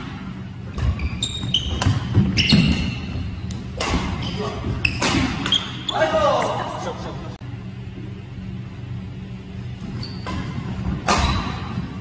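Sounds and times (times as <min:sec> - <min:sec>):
racket striking shuttlecock: 0:01.8 - 0:04.2, 0:04.9 - 0:05.8, 0:10.2 - 0:11.8.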